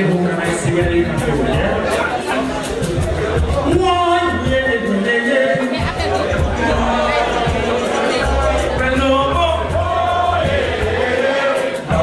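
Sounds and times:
reggae band playing: 0:00.0 - 0:12.0
men singing: 0:03.7 - 0:12.0.

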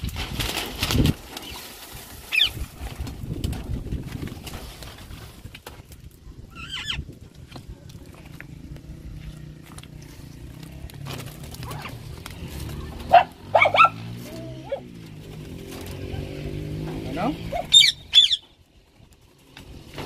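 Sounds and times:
caged birds calling: 0:02.3 - 0:02.6, 0:06.3 - 0:07.2, 0:09.4 - 0:18.8.

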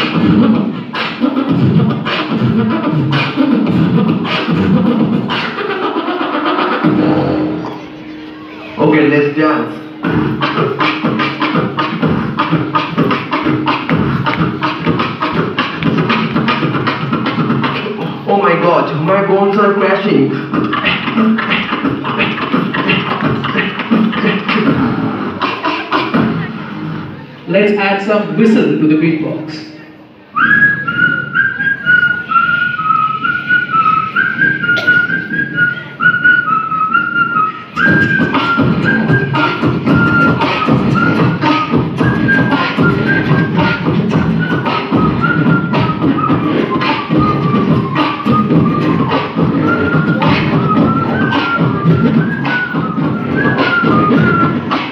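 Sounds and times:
beatboxing into microphones: 0:00.0 - 0:54.9
whistled tune: 0:30.3 - 0:54.9.

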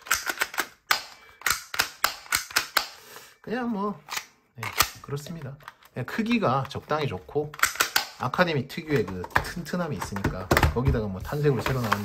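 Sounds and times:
plastic pistol clicks: 0:00.0 - 0:03.0, 0:07.6 - 0:08.2.

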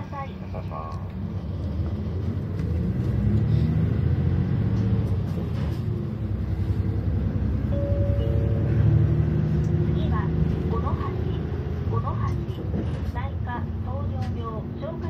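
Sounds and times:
bus engine and road rumble: 0:00.0 - 0:15.0.

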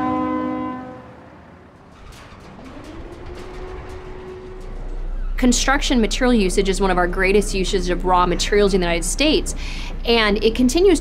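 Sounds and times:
low two-tone horn blast: 0:00.0 - 0:01.8, 0:02.6 - 0:07.4.

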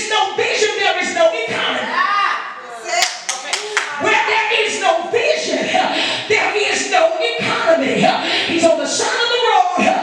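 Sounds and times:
woman's voice: 0:02.6 - 0:04.2
hands clapping: 0:03.0 - 0:04.0.

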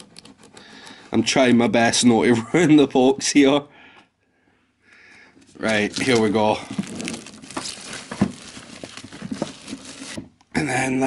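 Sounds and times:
cardboard box crinkling and rustling: 0:05.6 - 0:10.4.

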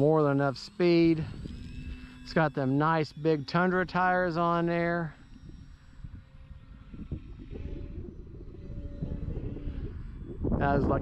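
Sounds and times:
distant rc plane motor drone: 0:00.0 - 0:11.0
wind rumbling on microphone: 0:00.0 - 0:11.0.

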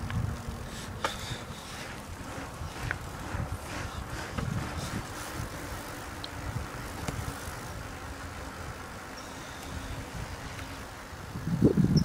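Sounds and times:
bicycle tyres rolling on asphalt: 0:00.0 - 0:12.0
bike clicks and rattles: 0:00.0 - 0:12.0
wind buffeting microphone: 0:00.0 - 0:12.0.

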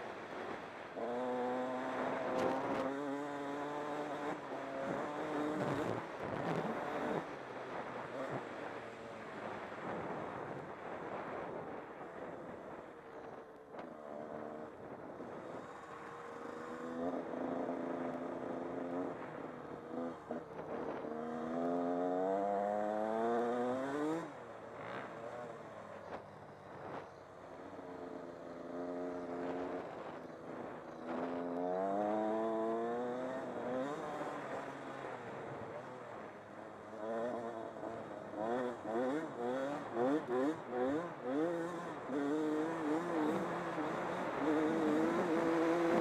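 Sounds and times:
dirt bike engine: 0:36.9 - 0:46.0.

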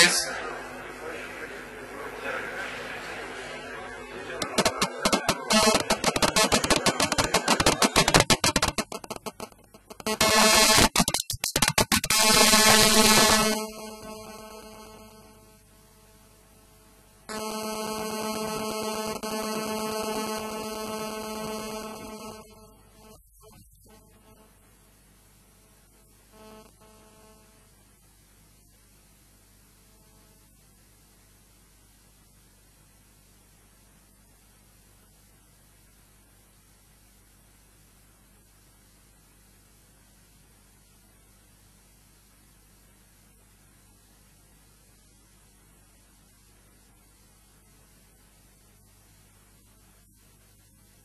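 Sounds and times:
faint mains hum: 0:00.0 - 0:51.0
fast electronic beat music: 0:04.4 - 0:13.6.

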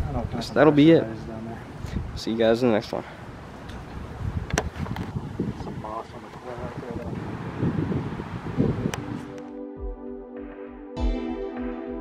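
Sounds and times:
wind buffeting microphone: 0:00.0 - 0:00.8, 0:01.6 - 0:02.3, 0:03.5 - 0:09.4.

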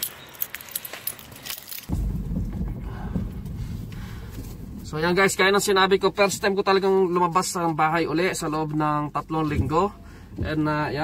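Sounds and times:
handling clicks and rustling: 0:00.0 - 0:01.9
car cabin rumble: 0:01.9 - 0:11.0.

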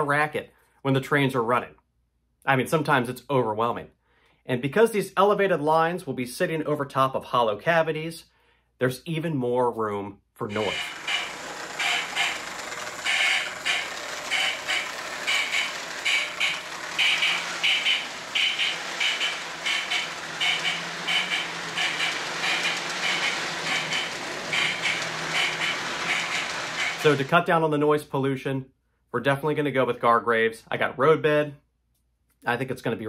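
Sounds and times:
low motor hum: 0:10.5 - 0:27.3
model train rolling rumble: 0:10.5 - 0:27.4
wheels clacking over track joints: 0:10.5 - 0:27.4.

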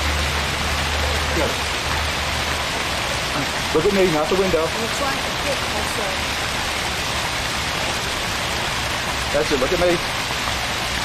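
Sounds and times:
fountain water splashing: 0:00.0 - 0:11.0.

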